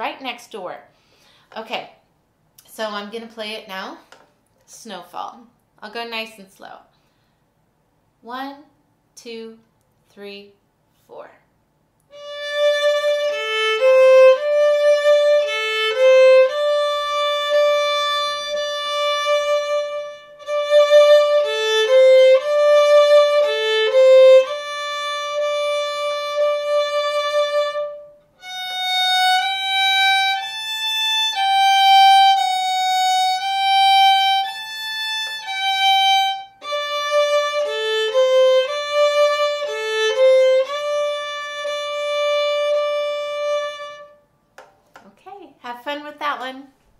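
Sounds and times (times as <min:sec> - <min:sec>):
solo violin playing slow tune: 0:12.1 - 0:44.2.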